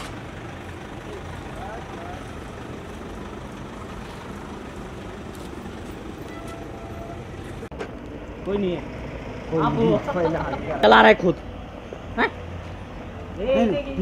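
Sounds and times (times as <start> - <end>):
car engines idling and moving: 0.0 - 14.0.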